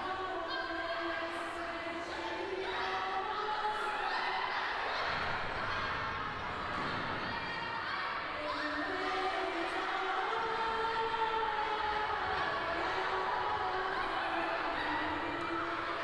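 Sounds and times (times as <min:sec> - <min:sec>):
girls' choir singing: 0:00.0 - 0:16.0.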